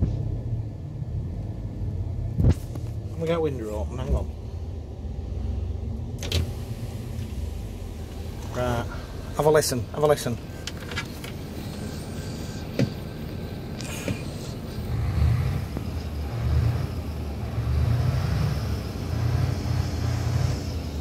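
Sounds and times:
diesel coach engine revving: 0.0 - 21.0.

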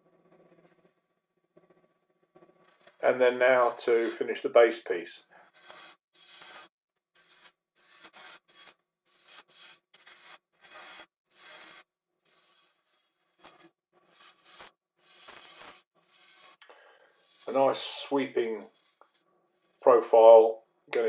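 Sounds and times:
lathe tool scraping wood: 2.4 - 4.4, 5.2 - 20.1.

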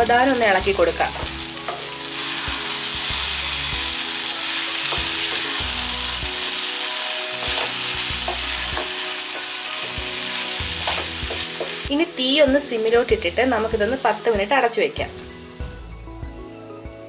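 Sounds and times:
food sizzling in a pan: 0.0 - 15.9.

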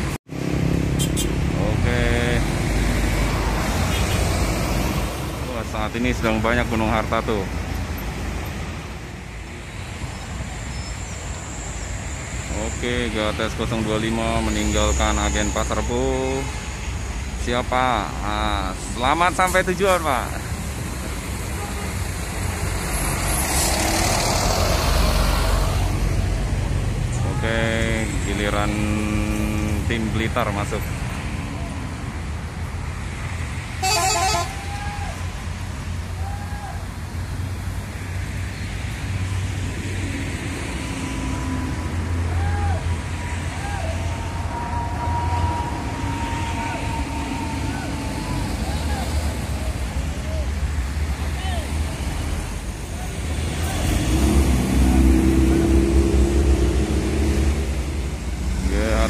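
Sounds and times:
diesel engine rumbling: 0.0 - 59.0
horn toot: 0.8 - 2.4, 3.7 - 4.4, 21.5 - 22.1, 33.8 - 35.0.

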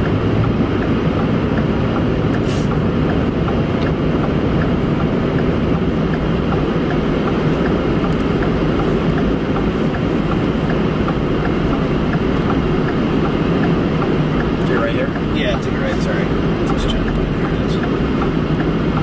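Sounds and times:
road and engine rumble in truck: 0.0 - 19.0.

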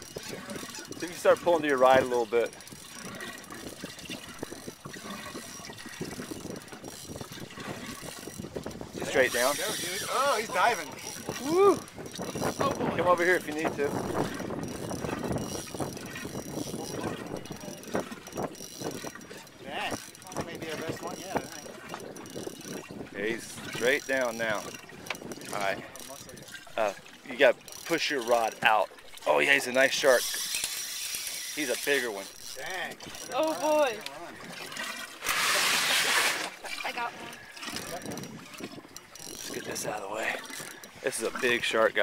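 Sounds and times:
fishing reel clicking and ratcheting: 0.0 - 42.0
water splashing: 0.0 - 42.0.

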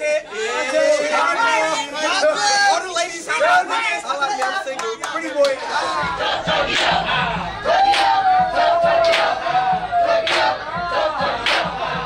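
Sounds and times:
crowd of men shouting: 0.0 - 4.7, 5.6 - 12.0.

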